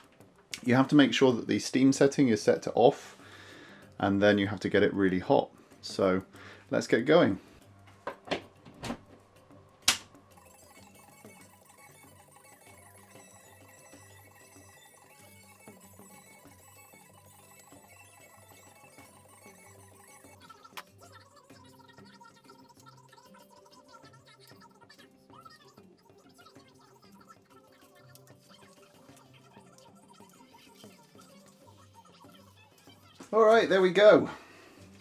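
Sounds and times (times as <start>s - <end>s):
quiet background music: 0.0s - 35.0s.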